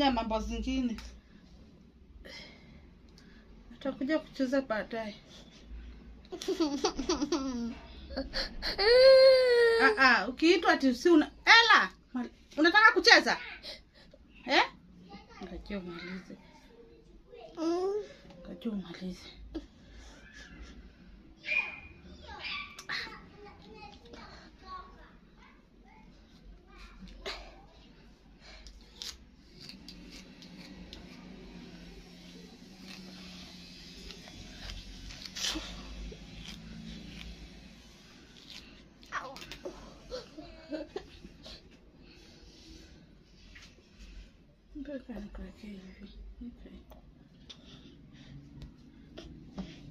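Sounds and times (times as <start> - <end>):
toddler whining cry: 8.4 - 10.0
comb scratching through hair: 28.8 - 40.0.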